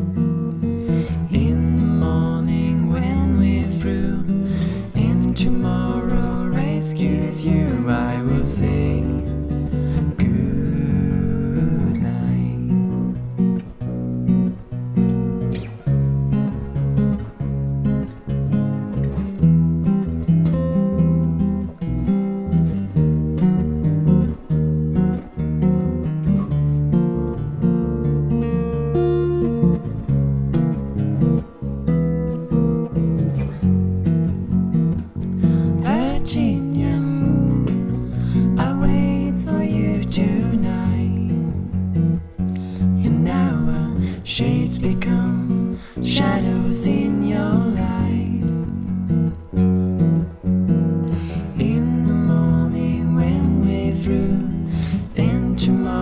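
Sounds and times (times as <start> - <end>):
acoustic guitar picking: 0.0 - 56.0
plucked upright bass: 0.0 - 56.0.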